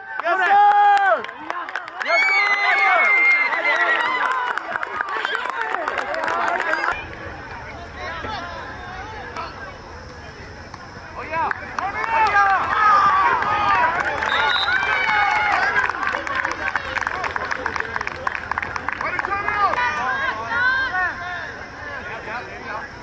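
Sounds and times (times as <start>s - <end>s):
young voices shouting and whooping: 19.3s - 21.5s.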